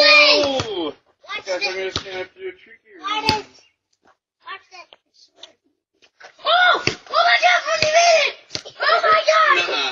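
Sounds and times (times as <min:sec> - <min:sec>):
young child yelling: 0:00.0 - 0:00.6, 0:06.4 - 0:09.9.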